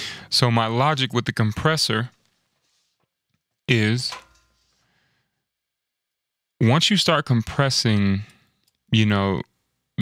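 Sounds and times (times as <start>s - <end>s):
man speaking: 0.0s - 2.1s, 3.7s - 4.3s, 6.6s - 8.3s, 8.9s - 9.5s.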